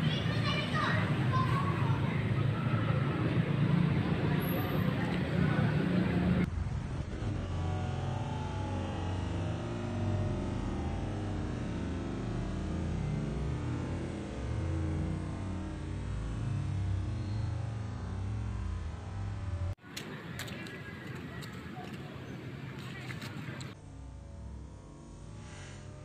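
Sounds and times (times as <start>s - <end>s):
indistinct voices: 0.0s - 6.5s
low rumbling noise: 0.0s - 26.0s
dull low rumble: 2.2s - 19.8s.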